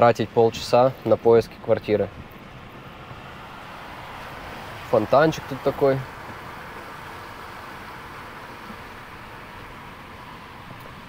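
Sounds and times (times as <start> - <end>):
car cabin noise: 0.0 - 11.0.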